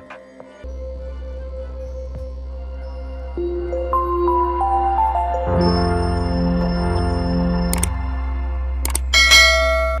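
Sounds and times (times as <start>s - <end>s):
low steady music drone: 0.6s - 10.0s.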